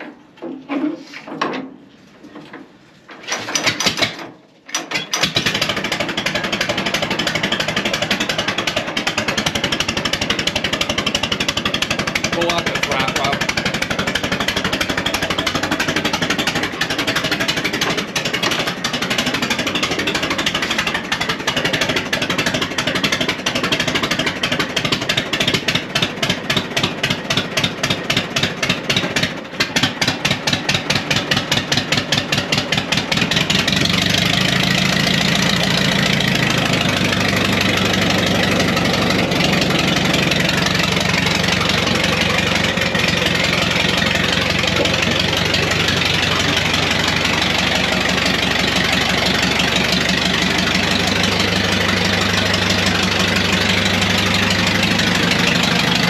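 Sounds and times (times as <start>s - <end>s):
tractor engine running: 1.6s - 56.0s.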